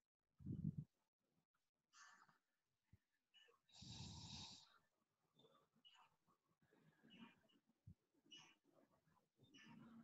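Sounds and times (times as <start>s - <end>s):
faint rough breath: 3.7s - 4.8s.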